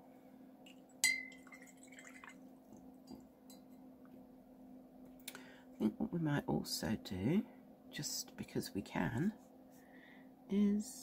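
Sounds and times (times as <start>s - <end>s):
steady low hum: 0.0s - 11.0s
brush clinking against glass: 1.0s - 2.1s
water sounds: 1.2s - 2.5s.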